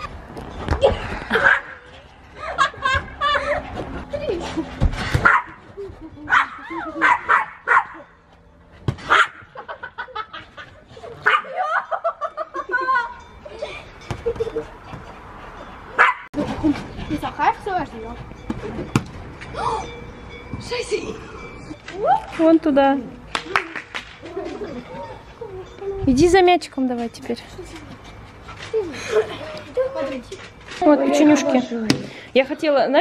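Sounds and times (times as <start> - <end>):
children laughing and squealing: 0.7 - 4.8, 5.5 - 8.2, 9.4 - 15.1, 23.4 - 26.1, 27.6 - 31.7.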